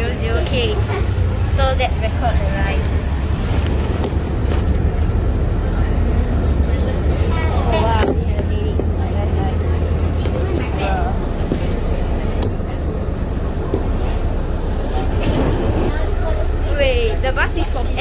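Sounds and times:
bus engine rumbling: 0.0 - 18.0.

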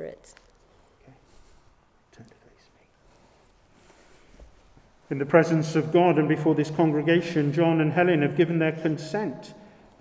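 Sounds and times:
faint whispering: 0.6 - 3.6.

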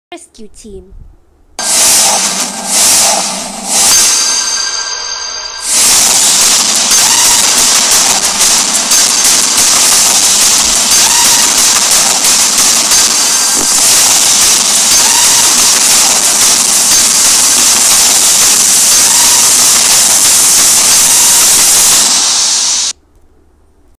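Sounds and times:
loud hiss-like wash: 1.6 - 4.5, 5.6 - 22.9.

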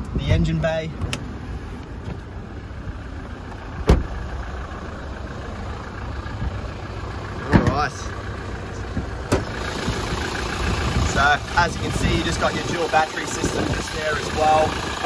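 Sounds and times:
truck engine idling: 0.8 - 15.0.

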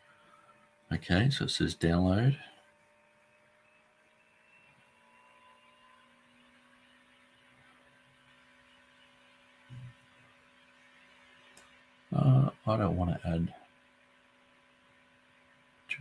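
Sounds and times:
faint electrical hum: 0.0 - 16.0.

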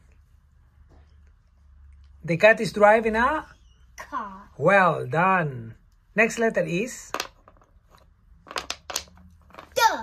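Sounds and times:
wooden piece clacking on board: 7.1 - 9.8.

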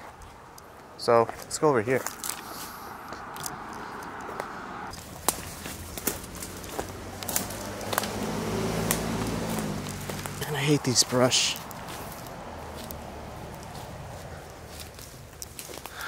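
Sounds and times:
footsteps through brush: 0.0 - 16.0
twigs cracking: 1.3 - 16.0
low engine hum: 2.7 - 15.9.

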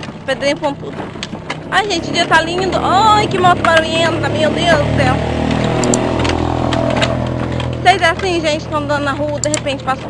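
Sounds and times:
motorcycle passing: 0.0 - 10.0.

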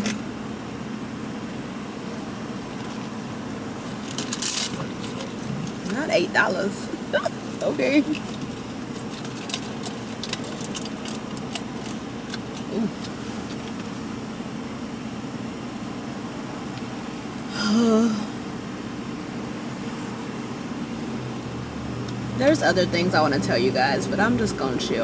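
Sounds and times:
car engine idling: 0.0 - 25.0
light clicks and jingles: 3.9 - 6.0, 7.5 - 13.9
woman humming: 12.7 - 13.0, 17.5 - 18.4.

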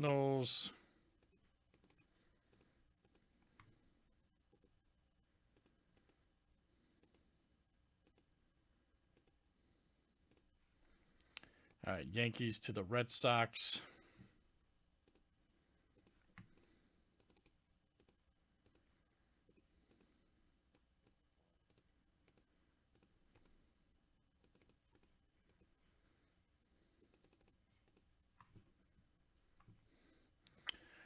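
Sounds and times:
mouse and keyboard clicks: 1.2 - 3.7.

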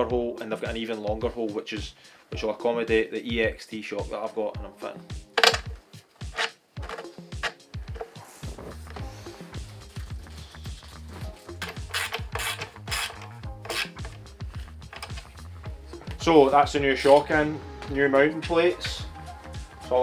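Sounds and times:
background music: 0.0 - 20.0
socket ratchet clicking: 5.4 - 7.6, 11.6 - 15.4.

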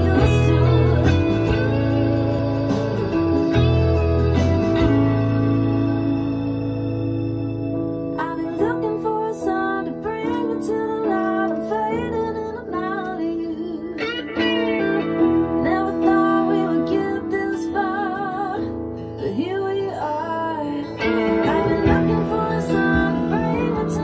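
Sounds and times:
band backing track: 0.0 - 12.2, 14.0 - 18.2, 20.9 - 24.0
electric guitar solo: 0.0 - 19.2, 20.6 - 24.0.

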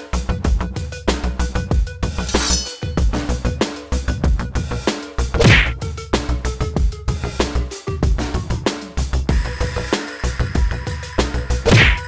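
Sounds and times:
background music with drum beat: 0.0 - 12.0
swooshing hit: 5.4 - 5.7, 11.7 - 12.0.

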